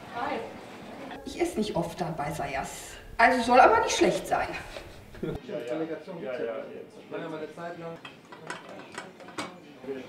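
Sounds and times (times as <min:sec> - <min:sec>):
plates clicking and knocking: 0:07.9 - 0:09.6.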